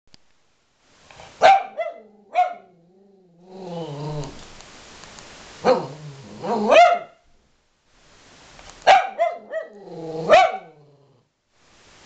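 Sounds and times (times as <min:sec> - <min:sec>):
dog barking sharply: 0:01.4 - 0:02.7, 0:06.5 - 0:07.2, 0:08.8 - 0:09.7, 0:10.3 - 0:10.7
dog growling low: 0:02.0 - 0:04.4, 0:05.6 - 0:06.7, 0:09.6 - 0:11.3.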